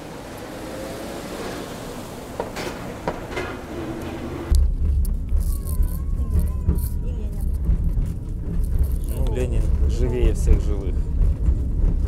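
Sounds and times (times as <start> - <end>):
vehicle engine and tyres rumbling: 0.0 - 12.0.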